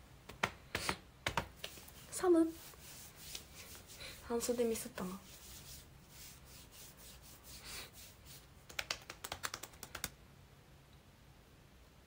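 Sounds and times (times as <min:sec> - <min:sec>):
hands rubbing arms and clothing: 0:00.3 - 0:10.2.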